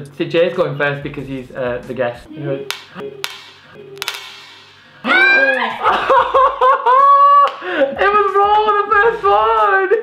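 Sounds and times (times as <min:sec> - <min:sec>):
egg tapping and cracking: 0:02.7 - 0:04.9.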